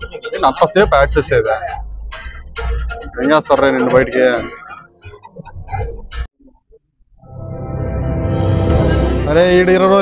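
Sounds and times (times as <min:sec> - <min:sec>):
deep bass-heavy music: 0:00.0 - 0:06.3, 0:07.2 - 0:10.0.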